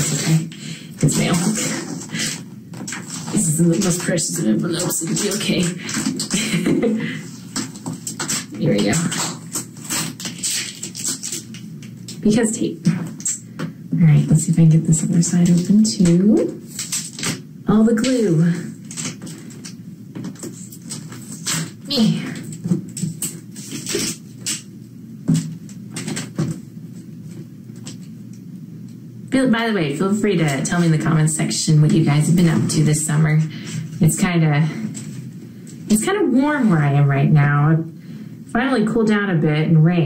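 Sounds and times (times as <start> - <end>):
tape being peeled off paper: 0.0 - 4.1, 4.8 - 12.2, 16.6 - 17.4, 18.8 - 21.8, 22.4 - 24.7
paper rustling: 0.0 - 12.2, 15.2 - 17.4, 18.0 - 28.1.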